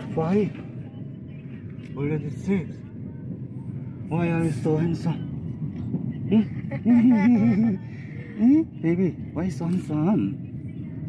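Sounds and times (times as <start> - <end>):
person laughing: 6.3 - 7.8.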